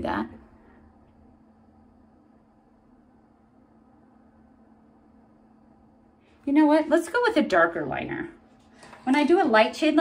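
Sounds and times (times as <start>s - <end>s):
low hum: 0.3s - 8.6s.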